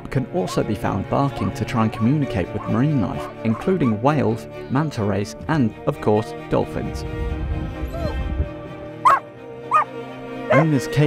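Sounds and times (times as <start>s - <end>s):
background music: 0.0s - 11.0s
dog barking high-pitched: 3.5s - 4.0s, 9.0s - 9.9s.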